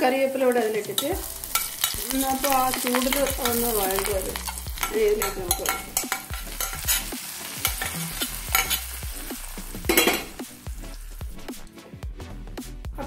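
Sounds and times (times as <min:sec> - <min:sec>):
hot oil sizzling: 0:00.0 - 0:11.7
spoon scraping against pan: 0:01.0 - 0:09.1.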